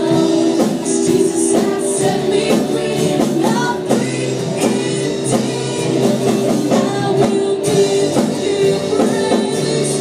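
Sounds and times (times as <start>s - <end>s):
drum kit: 0.0s - 10.0s
electric guitar: 0.0s - 10.0s
keyboard: 0.0s - 10.0s
people singing: 0.0s - 10.0s.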